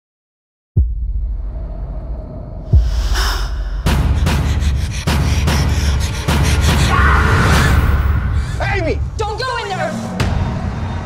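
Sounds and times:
deep boom hits: 0:00.8 - 0:08.4
rapid pulsing hits: 0:00.8 - 0:11.0
breathy gasp: 0:02.9 - 0:08.6.

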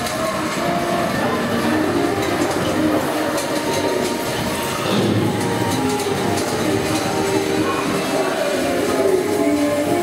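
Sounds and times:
ride vehicle rumbling on rail: 0:00.0 - 0:10.0.

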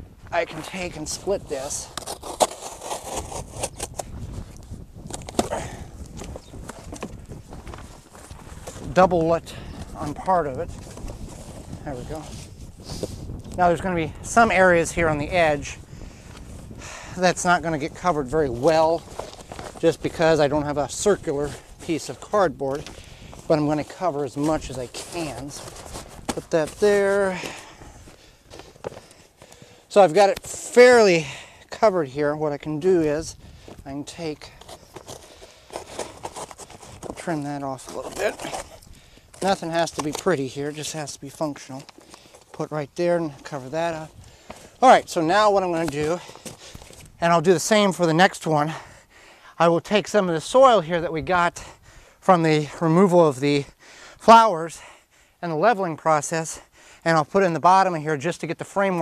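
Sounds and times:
bag and cardboard rustling: 0:00.4 - 0:31.5, 0:32.5 - 0:48.0
cardboard box tearing and crackling: 0:01.5 - 0:04.2, 0:23.6 - 0:27.6, 0:34.6 - 0:41.0
sharp cardboard cracks: 0:01.8 - 0:08.9, 0:24.3 - 0:27.8.

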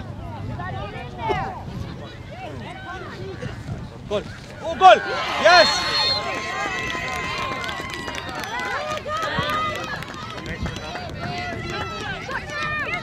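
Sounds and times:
crowd calling and cheering: 0:00.0 - 0:13.0.

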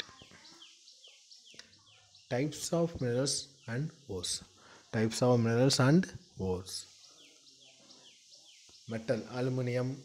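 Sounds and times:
bird chirping faintly: 0:00.0 - 0:10.0.

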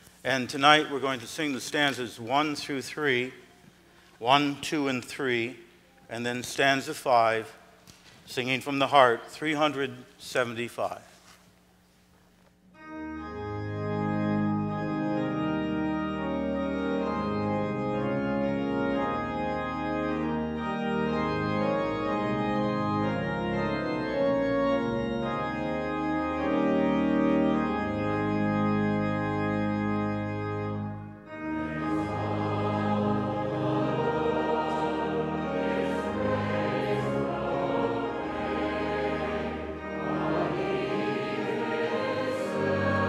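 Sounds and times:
church organ chords: 0:00.0 - 0:10.9, 0:12.7 - 0:43.0
congregation singing: 0:13.2 - 0:43.0.

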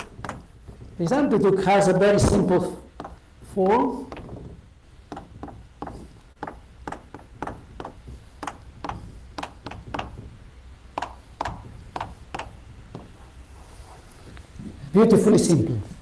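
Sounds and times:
chalk tapping on blackboard: 0:00.0 - 0:00.8, 0:02.9 - 0:14.5.

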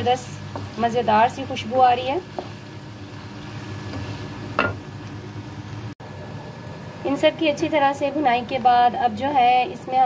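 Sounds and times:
meat sizzling in oil: 0:00.0 - 0:06.0.

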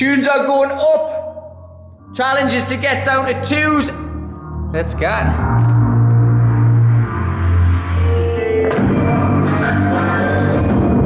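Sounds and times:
background music with deep bass: 0:00.0 - 0:11.0.

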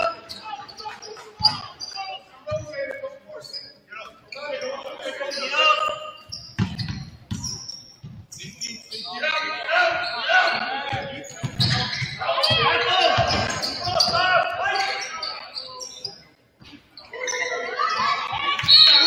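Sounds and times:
basketball bouncing on wooden floor: 0:06.3 - 0:08.3.

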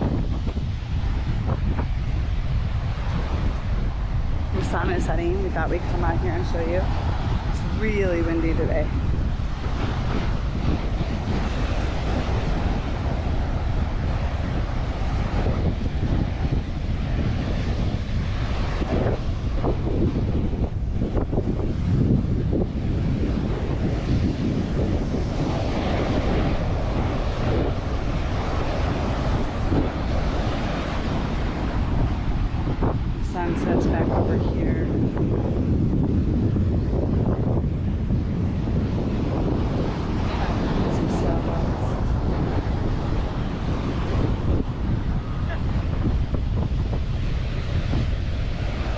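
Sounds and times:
ocean surf breaking: 0:00.0 - 0:48.9
wind buffeting microphone: 0:00.0 - 0:48.9.

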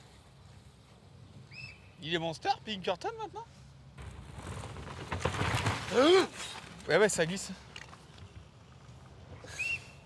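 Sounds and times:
bike knocks: 0:04.0 - 0:06.1
bike tyres sliding on dirt: 0:04.0 - 0:08.4.

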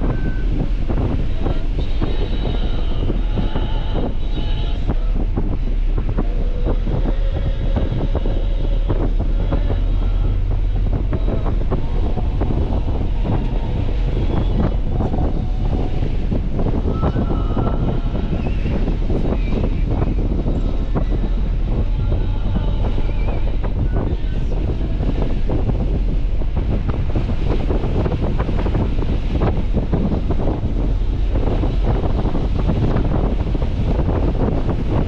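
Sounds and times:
car engine and road rumble: 0:00.0 - 0:35.0
wind buffeting microphone: 0:00.0 - 0:35.0.

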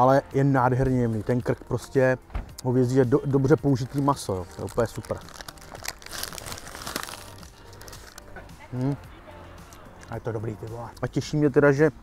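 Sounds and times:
paper wrapper crinkling: 0:03.6 - 0:09.0.

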